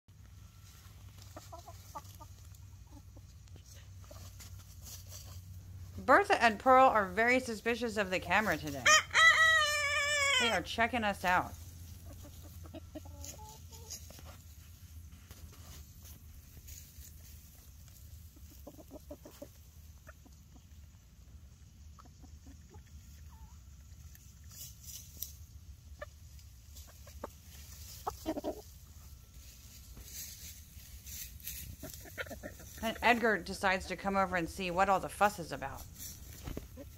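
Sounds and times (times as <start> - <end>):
hens clucking: 0.4 - 24.6, 25.3 - 36.9.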